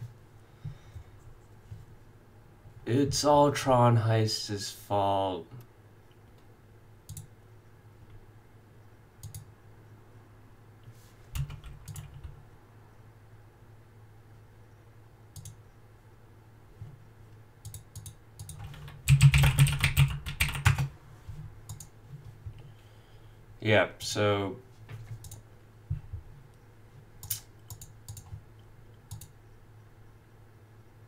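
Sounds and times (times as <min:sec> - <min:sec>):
faint low hum: 0:00.0 - 0:31.0
computer mouse clicks: 0:07.1 - 0:07.3, 0:09.2 - 0:09.5, 0:11.4 - 0:12.3, 0:15.3 - 0:15.6, 0:17.6 - 0:19.0, 0:21.7 - 0:22.0, 0:25.1 - 0:25.4, 0:27.2 - 0:29.4
typing on keyboard: 0:11.4 - 0:12.4, 0:17.6 - 0:20.9, 0:27.2 - 0:28.4.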